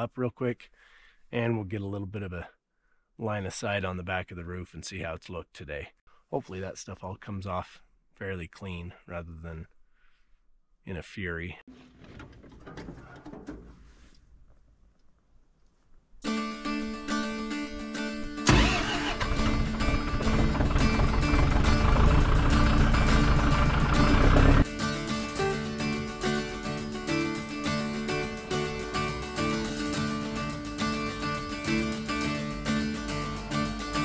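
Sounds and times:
background music: 16.2 - 34.0
tractor engine running: 18.4 - 25.3.

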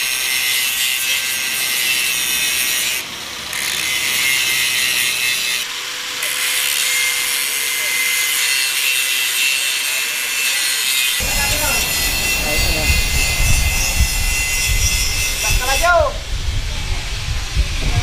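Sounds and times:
angle grinder grinding steel: 0.0 - 16.1.

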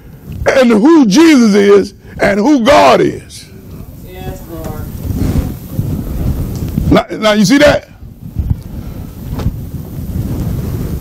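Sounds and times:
low microphone rumble: 0.0 - 11.0.

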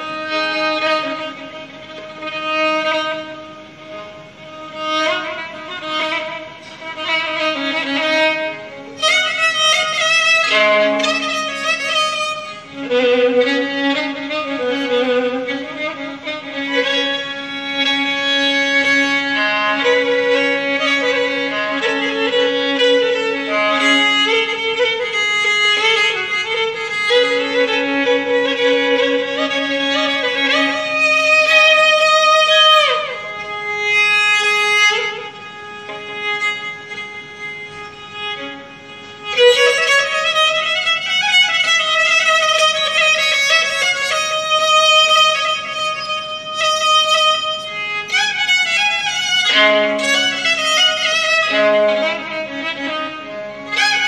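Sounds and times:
solo violin: 0.0 - 54.0.

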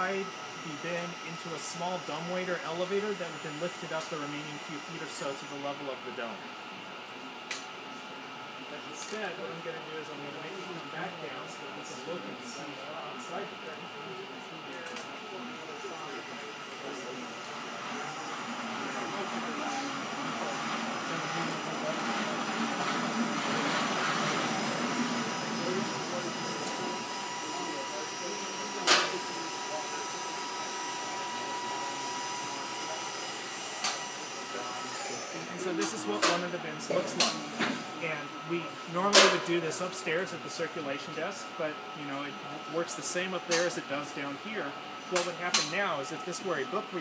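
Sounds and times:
crane motor hum and whine: 0.0 - 47.0.

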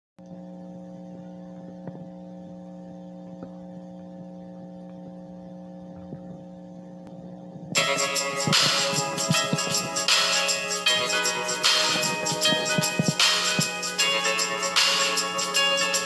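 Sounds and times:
steady electrical hum: 0.2 - 16.0
loud music: 7.8 - 16.0.

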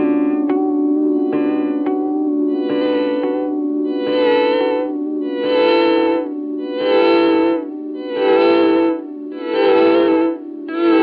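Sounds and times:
electric guitar chord with delay echoes: 0.0 - 11.0.

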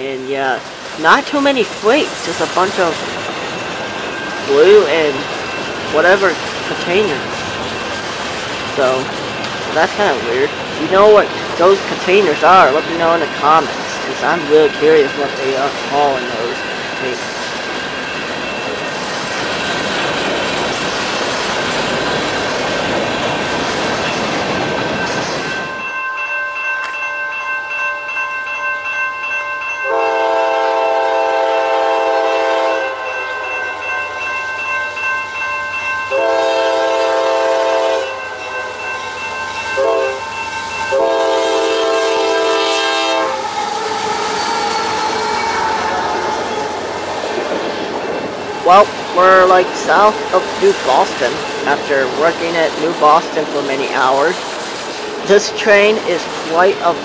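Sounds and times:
freight cars rumbling on rails: 0.0 - 26.0, 30.1 - 57.0
locomotive air horn: 29.9 - 33.0, 36.1 - 38.1, 39.8 - 40.2, 40.9 - 43.5.

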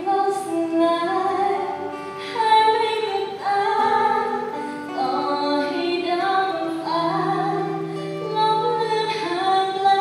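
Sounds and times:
acoustic guitar: 0.0 - 10.0
woman singing pop ballad: 0.0 - 10.0.

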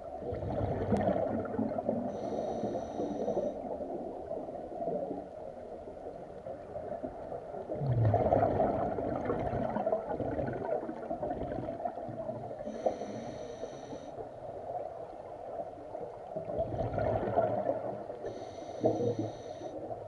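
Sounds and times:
gurgling exhaled bubbles: 0.0 - 2.2, 7.6 - 12.8, 16.4 - 18.1
whistling inhale through regulator: 2.1 - 3.6, 12.6 - 14.2, 18.2 - 19.8.

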